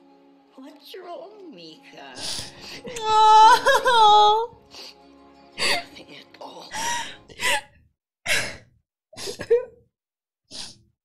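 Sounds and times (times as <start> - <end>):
woman sighing and half-laughing: 2.2 - 4.9, 5.6 - 5.9, 6.7 - 7.7.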